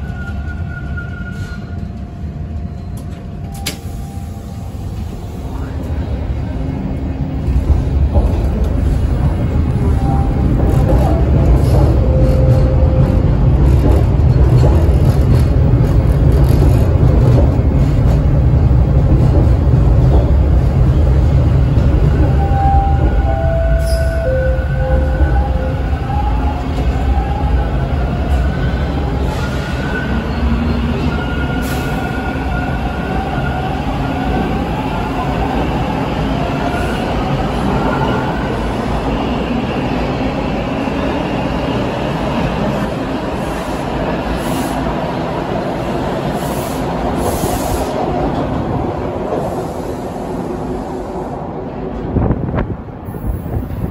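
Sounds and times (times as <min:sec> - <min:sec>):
wheels rumbling on rails: 0:04.5 - 0:53.9
subway train motor whine: 0:15.1 - 0:53.2.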